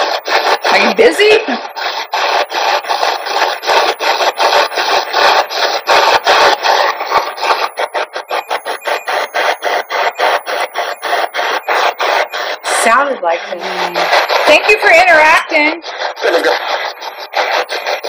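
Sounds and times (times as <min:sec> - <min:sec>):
radio static in bursts: 0:00.0 - 0:18.0.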